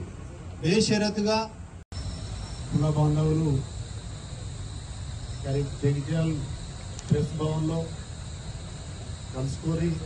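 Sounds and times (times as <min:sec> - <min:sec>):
high-pitched whine: 0:01.9 - 0:10.0.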